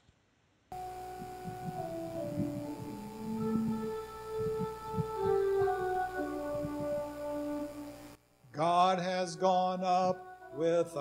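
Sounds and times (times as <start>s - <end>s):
church organ playing: 0.8s - 11.0s.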